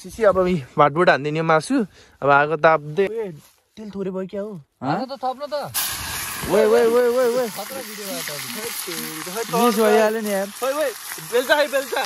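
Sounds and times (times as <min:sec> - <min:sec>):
raw meat sizzling in a hot pan: 0:05.6 - 0:12.0
man talking: 0:06.4 - 0:12.0.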